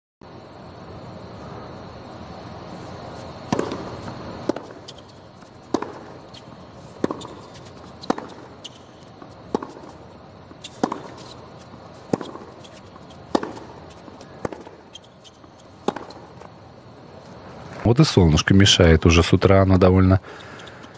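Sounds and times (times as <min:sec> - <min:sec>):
steady background hiss: 0:00.2 - 0:20.9
tennis ball bouncing: 0:03.2 - 0:16.7
tennis racquet hitting ball: 0:03.4 - 0:16.6.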